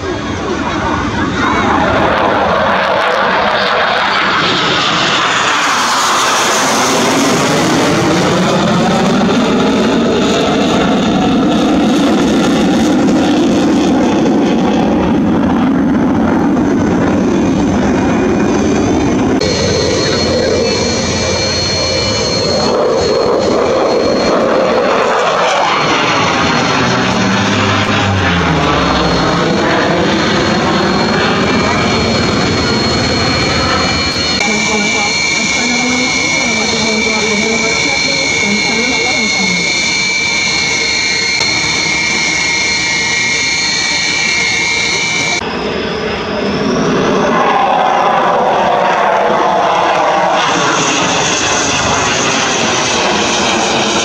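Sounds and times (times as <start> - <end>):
high whine: 0.0 - 54.0
jet engine running loudly: 0.0 - 54.0
jet flying past: 0.0 - 54.0.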